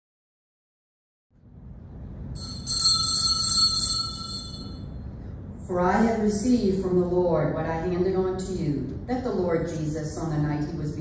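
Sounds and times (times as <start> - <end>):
small bells ringing: 2.4 - 5.0.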